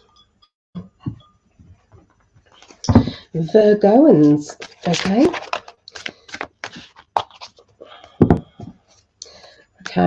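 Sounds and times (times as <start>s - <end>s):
cards being shuffled: 4.5s - 7.6s.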